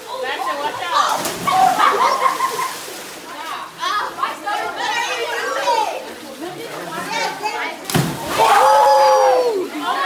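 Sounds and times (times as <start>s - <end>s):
young people talking and calling out: 0.0s - 10.0s.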